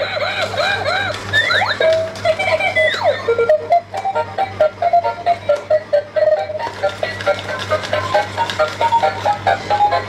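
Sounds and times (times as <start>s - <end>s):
toy playing electronic tune: 0.0s - 10.0s.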